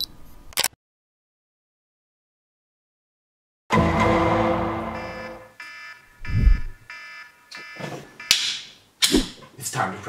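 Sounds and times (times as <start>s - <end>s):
smartphone alarm chiming: 5.0s - 8.4s.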